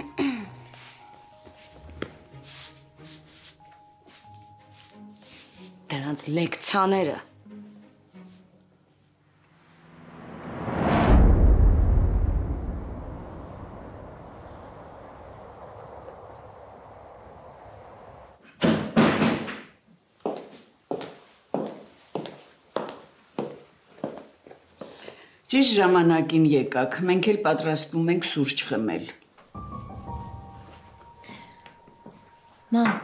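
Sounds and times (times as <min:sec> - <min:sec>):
whoosh into deep boom: 0:09.9 - 0:18.4.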